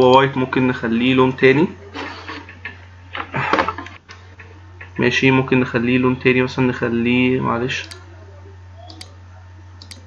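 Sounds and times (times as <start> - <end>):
low electrical hum: 0.0 - 10.0
computer mouse clicks: 9.8 - 10.0.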